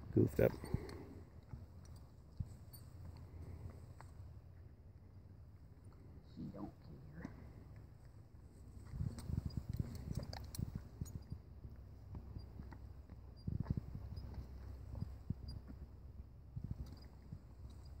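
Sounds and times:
horse shifting: 7.0 - 16.0.

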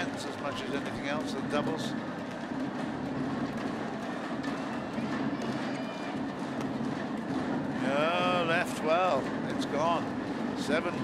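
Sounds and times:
crowd murmur: 0.0 - 11.0
footwork on court: 0.0 - 11.0.

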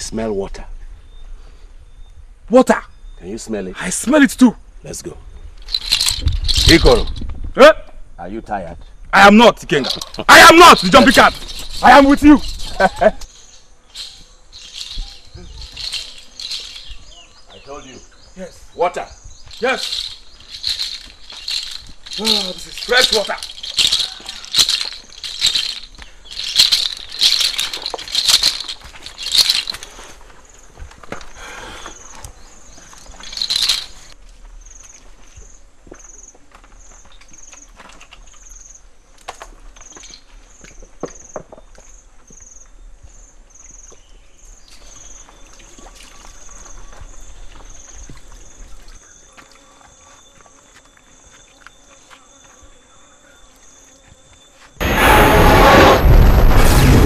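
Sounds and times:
high insect chirp: 0.0 - 57.0
rattle shaken: 5.6 - 7.4, 9.7 - 17.3, 19.4 - 30.3, 32.9 - 34.2, 39.9 - 40.3.

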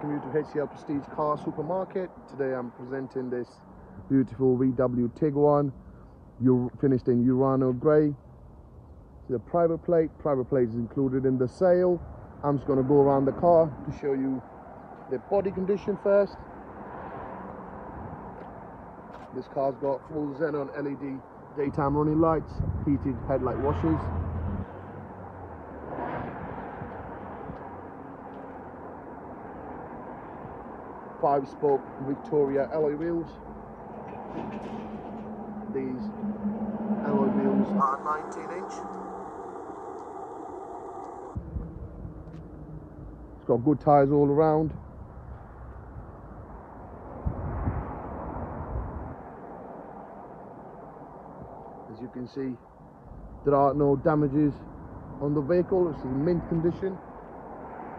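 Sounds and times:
outdoor background noise: 0.0 - 57.9
low hum: 33.3 - 43.4.

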